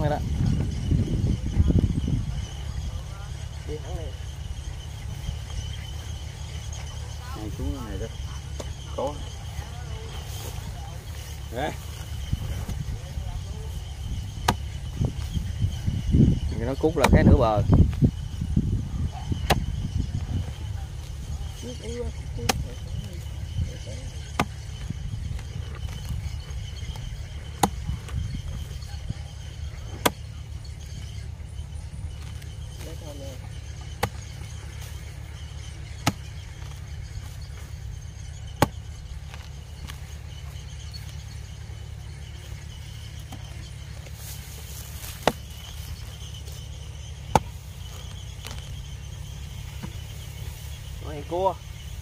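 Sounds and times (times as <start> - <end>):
steady low rumble: 0.0 - 52.0
hoe chopping into earth: 14.4 - 14.9, 17.0 - 17.3, 19.4 - 19.8, 24.3 - 24.6, 27.5 - 28.2, 29.9 - 30.3, 33.8 - 34.4, 35.9 - 36.8, 38.5 - 40.0, 44.9 - 46.0, 47.2 - 48.7.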